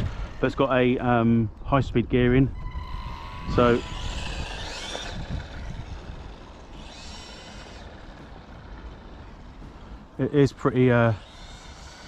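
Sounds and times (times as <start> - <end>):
electric rc car motor whining: 0.0 - 1.0, 2.5 - 12.0
wind rumble on microphone: 0.0 - 10.3.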